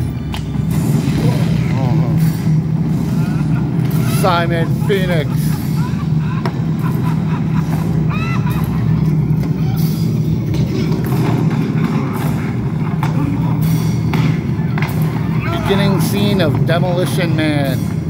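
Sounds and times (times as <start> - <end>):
movie soundtrack music: 0.0 - 18.0
steady low rumble: 0.0 - 18.0.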